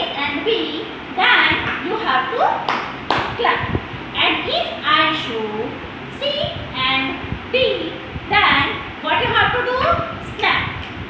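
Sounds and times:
hand claps: 0:02.7 - 0:03.4.

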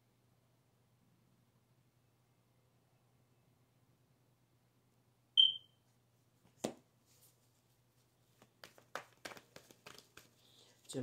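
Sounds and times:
short high electronic beep: 0:05.4 - 0:05.7.

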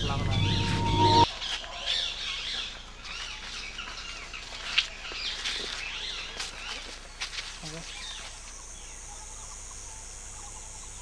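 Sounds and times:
steady hum: 0:00.0 - 0:01.3
birds chirping: 0:00.0 - 0:11.0.

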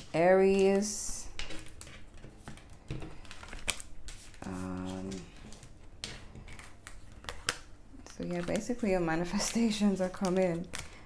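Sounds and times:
cards clicking and tapping on table: 0:05.1 - 0:07.7.

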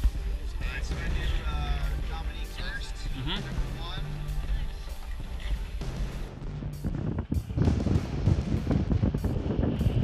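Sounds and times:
wind buffeting microphone: 0:04.7 - 0:10.0.

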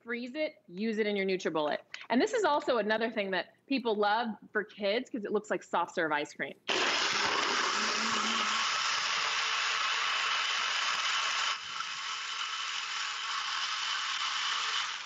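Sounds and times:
blender crushing frozen fruit: 0:06.7 - 0:15.0.

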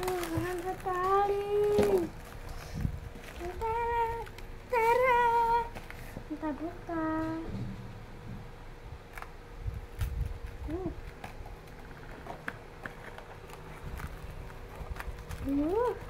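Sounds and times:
person humming: 0:00.0 - 0:02.2, 0:03.4 - 0:07.5
handling rumble: 0:00.0 - 0:16.0.

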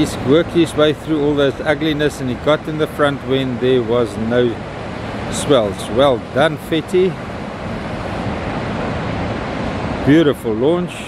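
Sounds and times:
surf rushing: 0:00.0 - 0:11.0.

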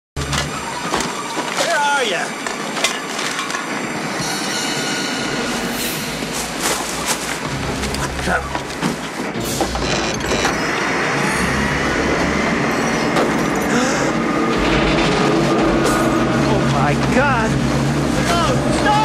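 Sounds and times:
garbage truck machinery rumble: 0:00.2 - 0:01.6, 0:02.3 - 0:19.0
metallic clanks and squeals: 0:02.8 - 0:07.2, 0:09.3 - 0:16.4.

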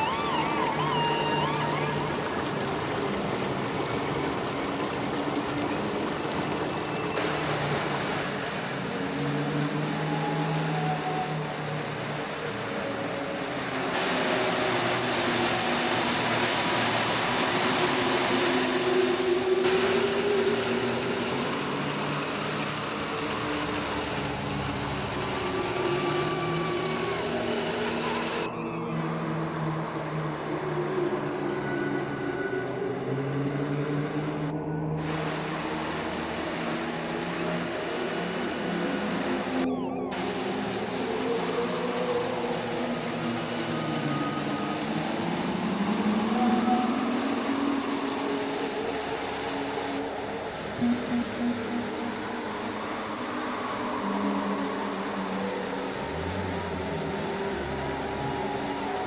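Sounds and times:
slow ambient music: 0:00.0 - 0:59.0
stream rushing over rocks: 0:00.0 - 0:59.0.

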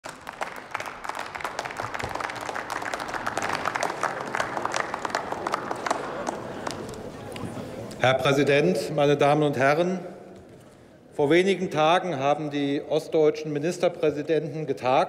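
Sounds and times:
scattered applause: 0:00.0 - 0:08.0.

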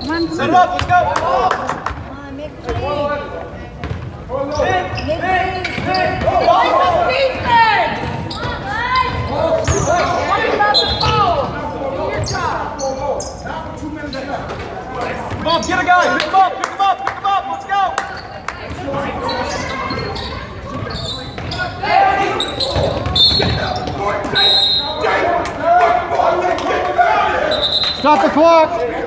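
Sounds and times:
people shouting in gym: 0:04.6 - 0:12.5, 0:21.5 - 0:29.0.

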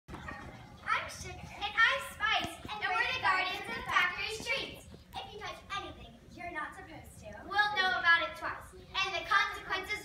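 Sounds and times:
children shouting and chattering: 0:00.1 - 0:10.0.

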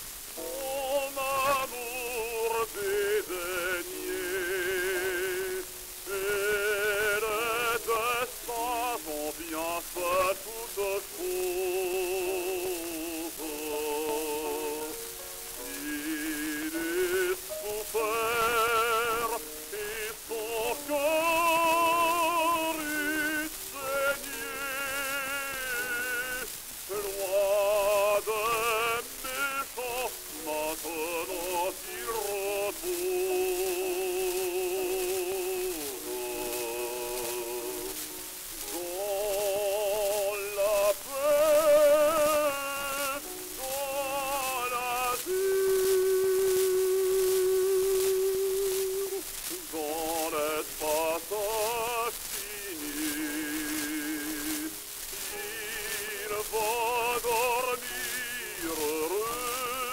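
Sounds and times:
baritone singing with vibrato: 0:00.0 - 0:59.9
record surface hiss and crackle: 0:00.0 - 0:59.9.

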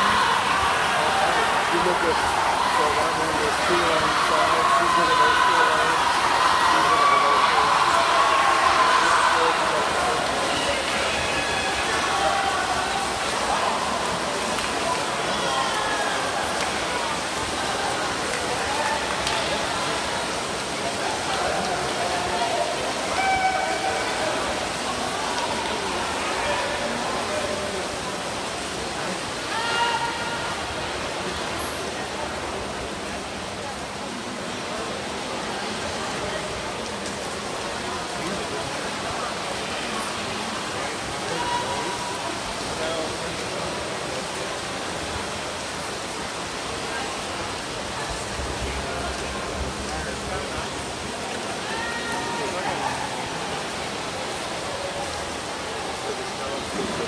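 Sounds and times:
crowd cheering and shouting: 0:00.0 - 0:20.1, 0:21.0 - 0:27.9, 0:29.3 - 0:30.8, 0:41.1 - 0:42.5, 0:51.4 - 0:53.7.

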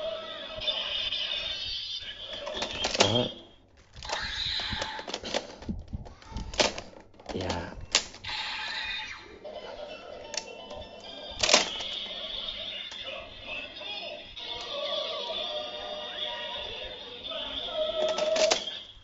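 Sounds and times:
toy electronic music and effects: 0:00.0 - 0:03.4, 0:08.2 - 0:19.0
sharp plastic clicks: 0:03.8 - 0:08.3.

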